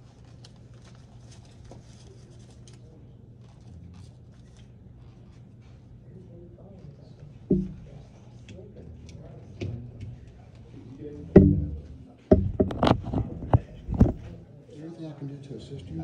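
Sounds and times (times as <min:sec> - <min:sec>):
faint low voices murmuring: 0:00.9 - 0:16.0
sharp knocks and thumps: 0:07.5 - 0:08.0, 0:11.3 - 0:14.4.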